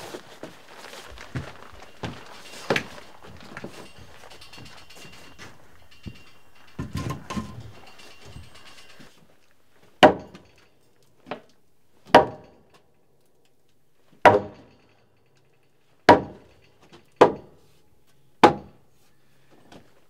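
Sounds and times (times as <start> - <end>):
hammer striking timber: 10.0 - 10.5, 12.1 - 12.6, 14.2 - 14.8, 16.1 - 16.6, 17.2 - 17.6, 18.4 - 18.8.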